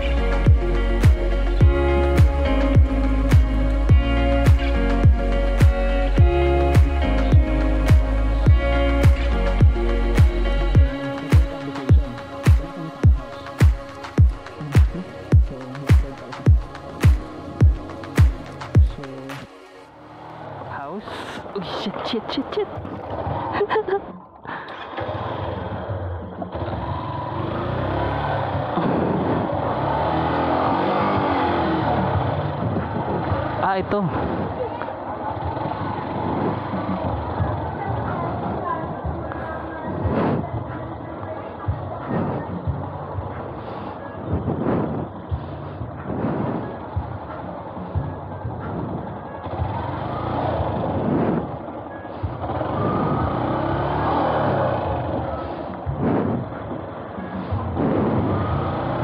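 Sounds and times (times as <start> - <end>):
motorcycle engine running: 0.0 - 19.3, 24.7 - 44.4, 45.0 - 59.0.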